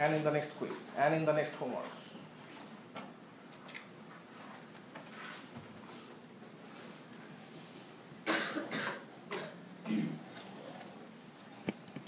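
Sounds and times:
person coughing: 8.2 - 10.3.

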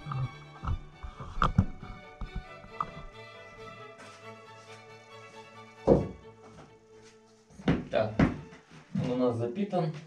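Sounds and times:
knocks on a workbench: 5.8 - 6.2, 7.6 - 8.4.

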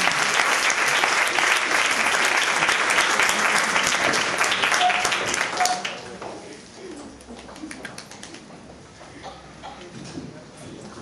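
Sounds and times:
scattered applause: 0.0 - 6.2
low indistinct voices: 5.6 - 11.0.

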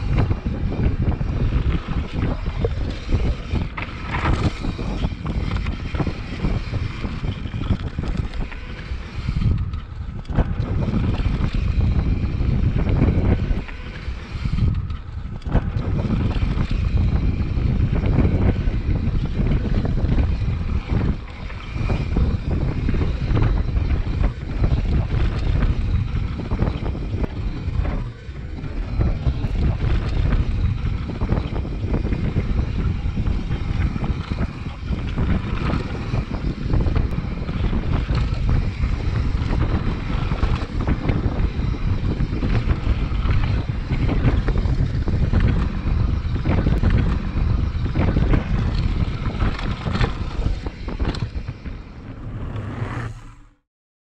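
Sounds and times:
wind buffeting microphone: 0.0 - 53.6
bike knocking and clattering: 14.6 - 21.0.

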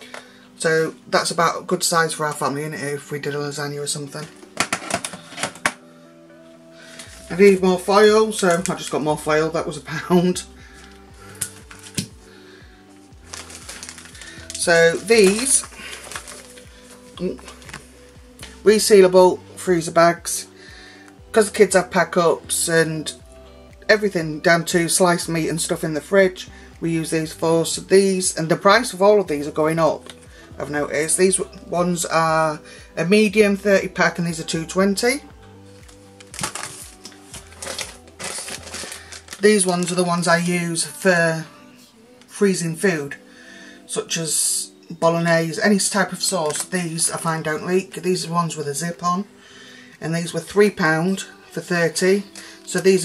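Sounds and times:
calm background music: 0.0 - 53.0
plastic packaging rustling: 4.2 - 5.8, 10.7 - 12.2, 13.2 - 17.9, 35.8 - 40.0, 46.2 - 46.8
plastic wrapping crinkling: 4.2 - 5.8, 10.7 - 12.2, 13.2 - 18.6, 35.8 - 40.0, 46.4 - 46.8.

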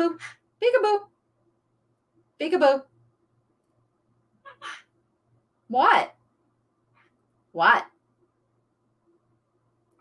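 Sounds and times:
parrot call: 4.4 - 4.9.

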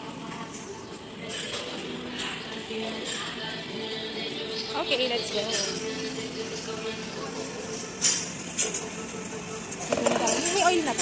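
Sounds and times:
restaurant background hiss: 0.0 - 11.0.

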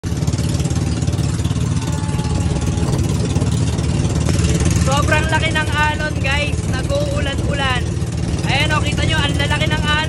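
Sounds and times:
boat engine droning: 0.0 - 10.0
rushing wind: 0.0 - 10.0
water noise: 0.0 - 10.0.

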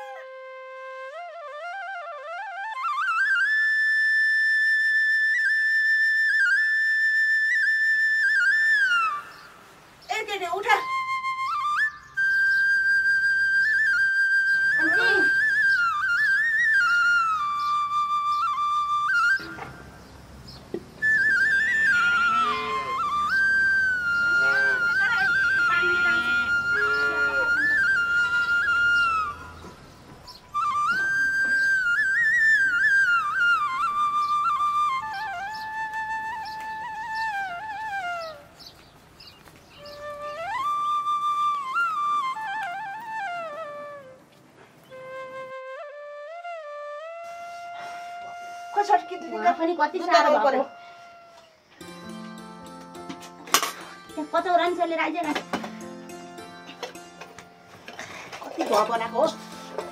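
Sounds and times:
solo flute melody: 0.0 - 20.2, 21.0 - 57.9.

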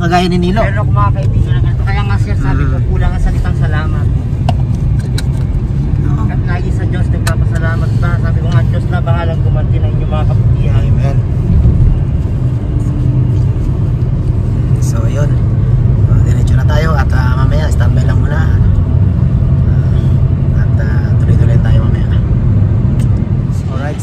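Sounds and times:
car road and engine rumble: 0.0 - 24.0.

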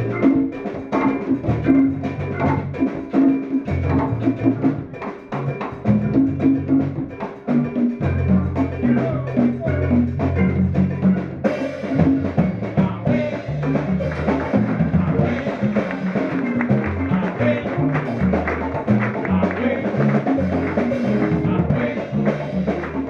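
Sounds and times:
electric guitar: 0.0 - 23.0
hand percussion and timbales: 0.0 - 23.0
keyboard: 0.0 - 23.0
upright bass line: 0.0 - 23.0.

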